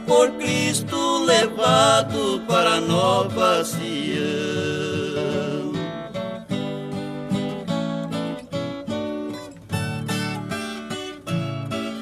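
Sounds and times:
acoustic guitar strummed and plucked: 0:00.0 - 0:12.0.

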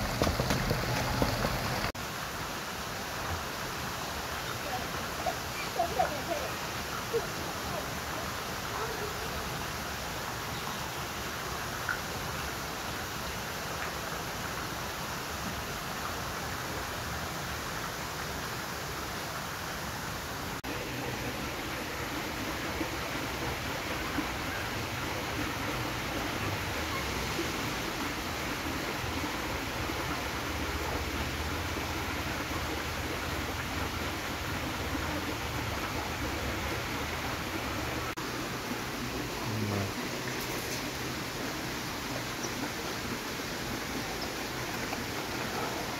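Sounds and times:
flowing water rushing: 0:00.0 - 0:45.9.

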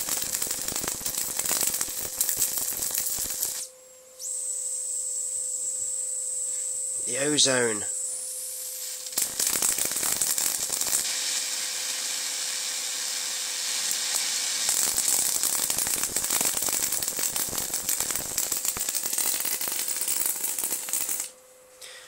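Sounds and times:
electric arc crackling hiss: 0:00.0 - 0:04.6, 0:07.0 - 0:21.3
faint steady whine: 0:00.0 - 0:22.0.

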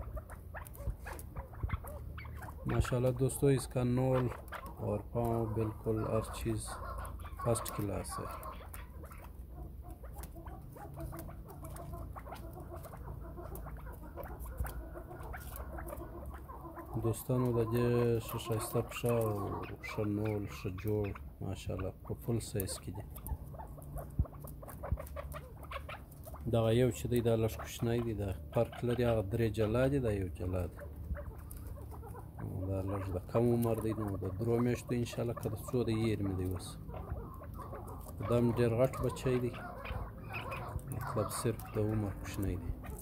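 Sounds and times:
partridge clucking: 0:00.0 - 0:43.0.

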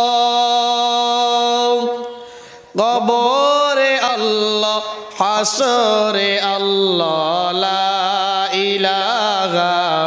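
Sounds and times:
man chanting through a microphone: 0:00.0 - 0:10.0.

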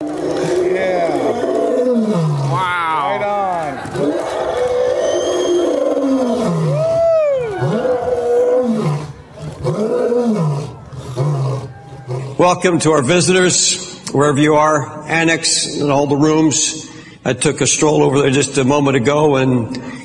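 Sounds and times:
lion roaring: 0:00.0 - 0:12.6.

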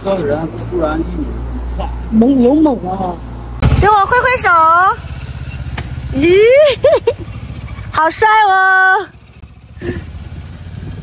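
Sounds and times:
motorcycle engine rumbling past: 0:03.6 - 0:11.0.

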